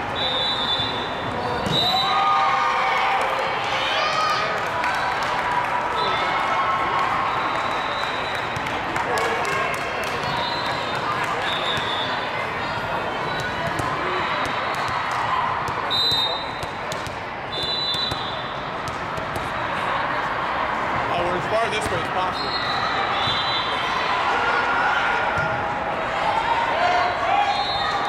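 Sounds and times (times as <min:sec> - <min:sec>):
many overlapping voices: 0:02.5 - 0:28.0
volleyballs thudding and bouncing: 0:08.4 - 0:19.9, 0:21.7 - 0:22.2.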